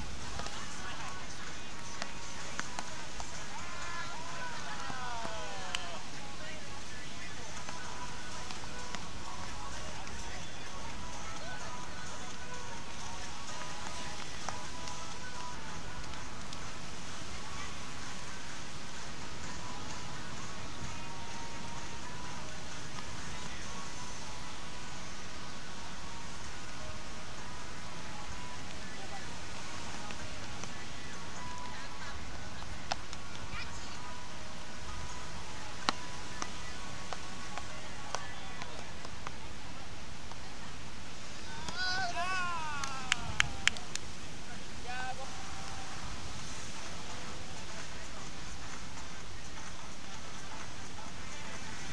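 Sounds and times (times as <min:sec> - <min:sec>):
steady rushing background noise: 0:00.0 - 0:51.9
person shouting: 0:41.7 - 0:43.4.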